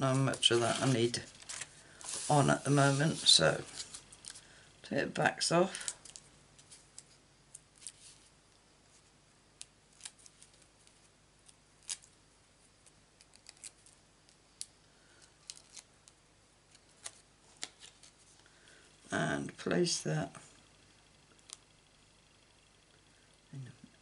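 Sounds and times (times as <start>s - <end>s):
cardstock clicks and crinkles: 12.8s - 18.2s.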